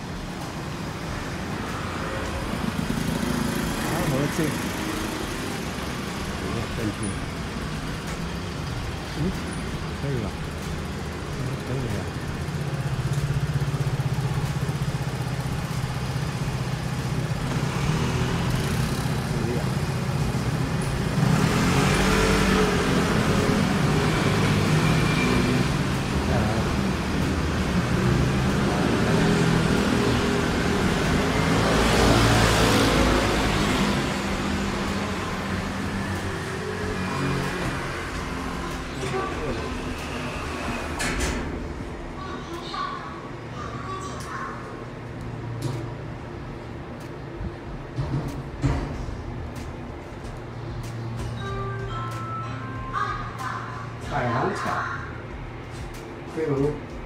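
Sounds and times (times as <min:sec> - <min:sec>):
cars and motorcycles passing: 0:00.0 - 0:57.0.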